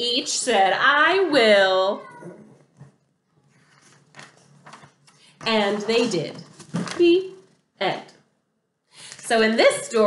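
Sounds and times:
woman's voice: 0.0 - 2.1, 5.4 - 8.2, 9.1 - 10.0
faint handling noise: 2.7 - 7.2.

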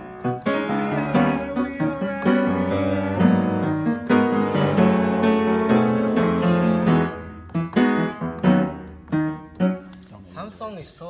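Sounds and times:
upright piano chords: 0.0 - 10.1.

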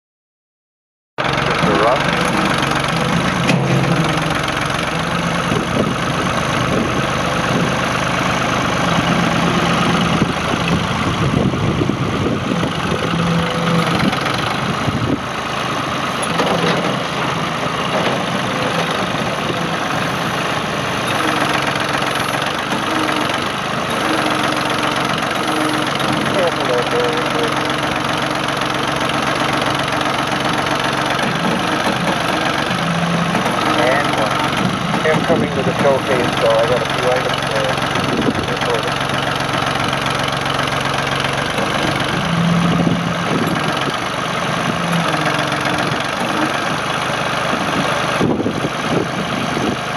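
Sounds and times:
diesel tractor engine running: 1.2 - 49.9.

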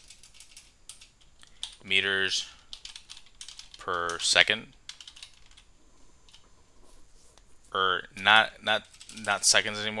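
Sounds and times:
computer keyboard keys clicking: 0.0 - 1.8, 2.7 - 5.7, 8.8 - 9.5.

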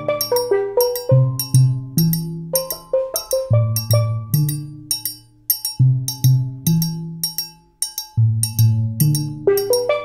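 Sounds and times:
steel drums playing: 0.0 - 10.0.

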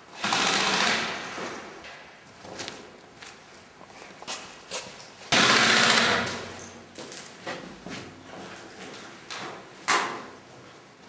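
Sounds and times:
airsoft rifle full-auto burst: 0.2 - 1.2, 5.3 - 6.3.

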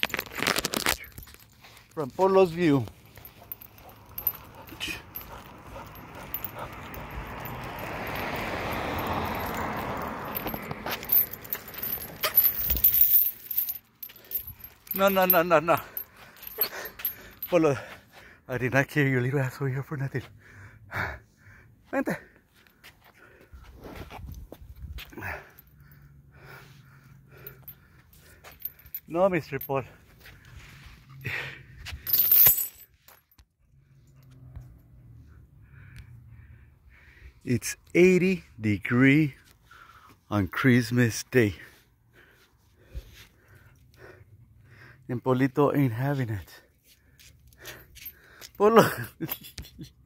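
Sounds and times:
metal chain leash rattling: 0.0 - 19.6, 23.2 - 33.4, 45.3 - 49.9
passing car road noise: 2.8 - 14.8, 33.8 - 37.4.

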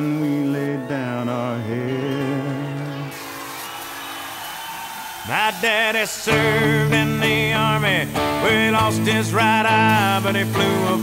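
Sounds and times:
cutting head hissing: 2.9 - 11.0.

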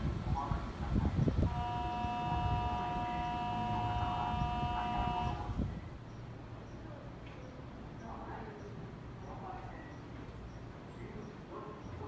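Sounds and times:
train horn two-tone blast: 1.4 - 5.6.

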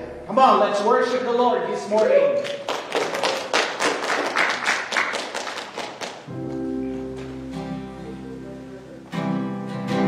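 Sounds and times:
keyboard chords: 6.2 - 10.0
acoustic guitar strumming: 6.3 - 10.0.

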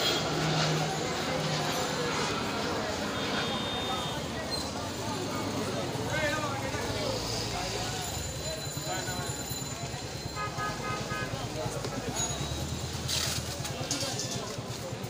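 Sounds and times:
passers-by talking: 0.0 - 15.0
vehicle engines in traffic: 0.0 - 15.0.

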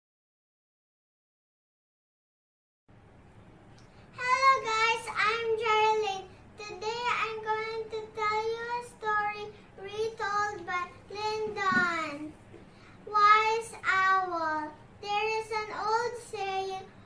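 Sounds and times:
girl singing unaccompanied: 4.1 - 17.0.

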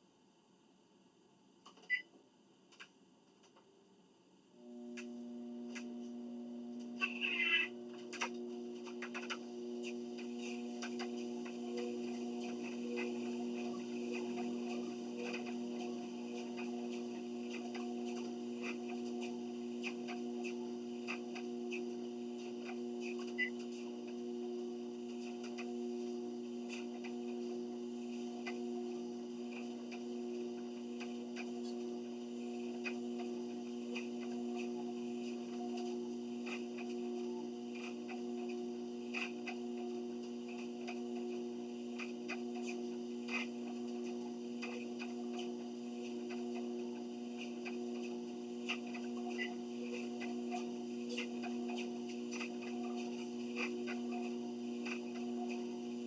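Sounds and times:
treadmill motor hum: 4.5 - 56.0.

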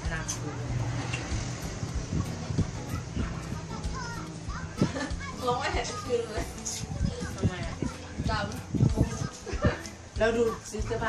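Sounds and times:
faint background music: 0.0 - 11.0
low voices: 0.0 - 11.0.

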